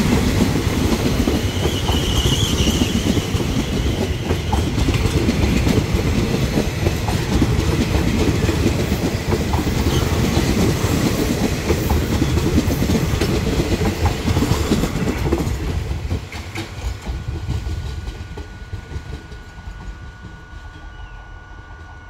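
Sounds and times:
train wheels rumbling on rail: 0:00.0 - 0:22.0.

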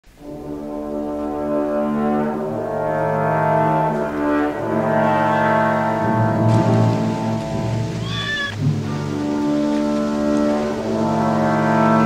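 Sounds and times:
low brass sustained chord: 0:00.1 - 0:08.0, 0:08.6 - 0:12.0.

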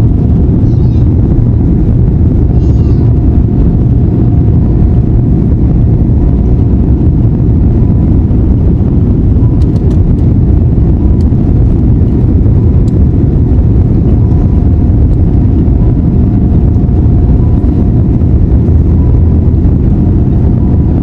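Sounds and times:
faint steady whine: 0:00.0 - 0:21.0
jet engines and wheels rumbling: 0:00.0 - 0:21.0.

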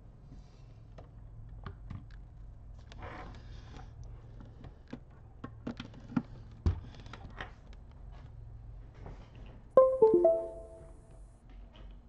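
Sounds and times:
device-connect chime: 0:09.8 - 0:11.0.

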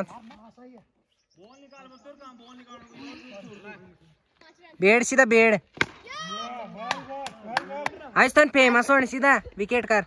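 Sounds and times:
children and men shouting: 0:06.0 - 0:07.0.

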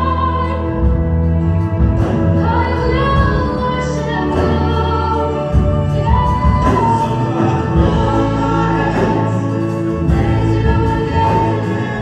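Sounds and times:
man and woman singing: 0:00.0 - 0:01.1, 0:02.2 - 0:12.0
band playing worship song: 0:00.0 - 0:12.0.

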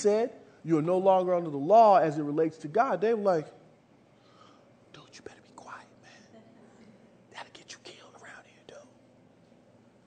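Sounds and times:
person whispering faintly: 0:05.0 - 0:06.3, 0:07.3 - 0:09.0.

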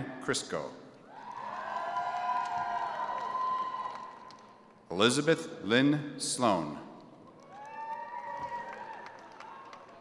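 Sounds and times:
distant audience cheer: 0:01.1 - 0:04.3, 0:07.5 - 0:10.0.

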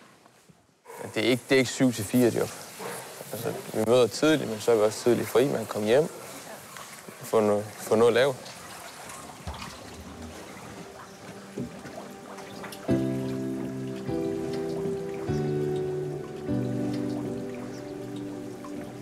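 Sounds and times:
water running from hose into tank: 0:03.2 - 0:19.0
slow sustained chords music: 0:09.6 - 0:19.0.

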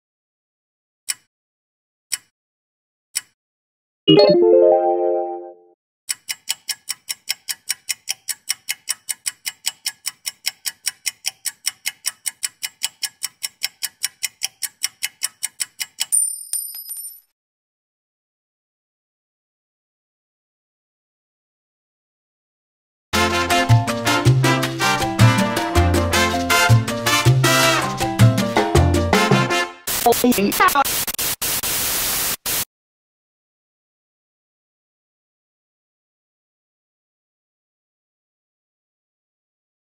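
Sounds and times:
bell ding: 0:04.1 - 0:05.5
keyboard chord: 0:04.1 - 0:05.7, 0:23.2 - 0:29.6
clock ticking fast: 0:06.1 - 0:16.1
loud static hiss: 0:29.9 - 0:32.6.

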